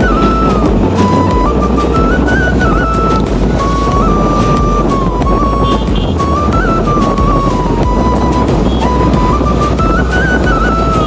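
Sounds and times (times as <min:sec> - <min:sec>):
background music melody: 0:00.0 - 0:11.0
vehicle rumble: 0:00.0 - 0:11.0.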